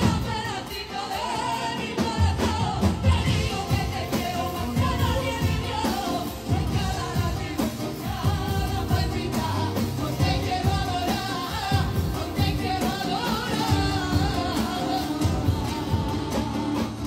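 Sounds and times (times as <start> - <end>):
group of people singing: 0.0 - 17.0.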